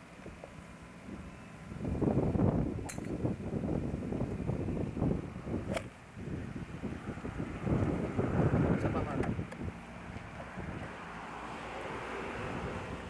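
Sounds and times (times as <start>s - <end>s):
wind buffeting microphone: 1.0s - 11.1s.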